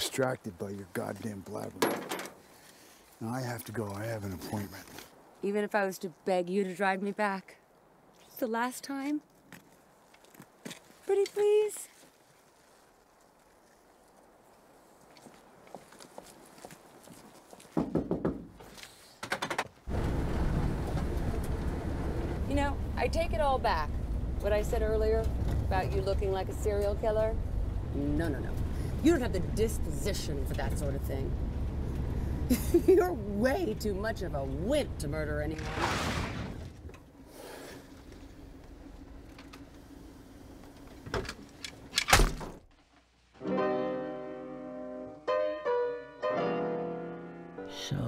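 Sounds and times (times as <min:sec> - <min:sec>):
van engine and road rumble: 0:19.7 - 0:42.7
piano music: 0:43.4 - 0:48.0.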